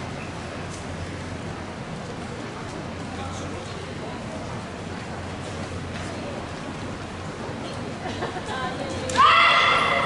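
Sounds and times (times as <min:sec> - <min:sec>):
woman's high-pitched shout: 0:09.1 - 0:10.0.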